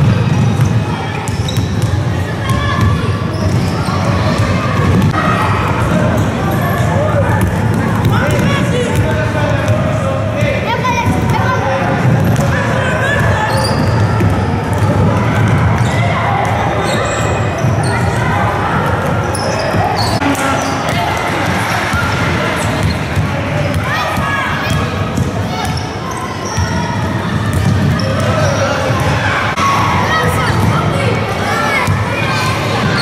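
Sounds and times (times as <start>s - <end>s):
basketballs bouncing on wooden court: 0.0s - 6.3s, 7.1s - 20.1s, 26.4s - 28.6s
children's voices and calls: 10.4s - 12.0s, 23.3s - 33.0s.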